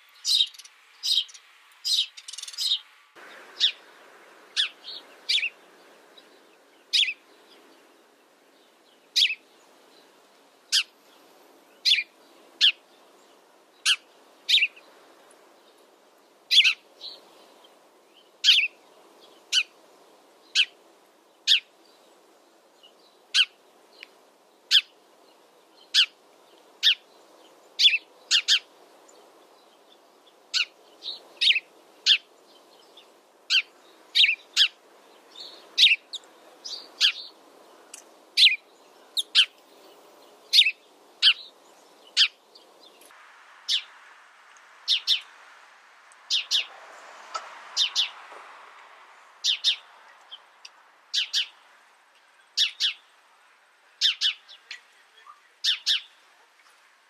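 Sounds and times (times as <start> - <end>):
sparrow chirping: 0.0 - 44.0, 44.7 - 45.4, 46.2 - 46.7, 47.7 - 48.3, 49.2 - 53.2, 53.9 - 56.3
faint background hiss: 0.0 - 57.0.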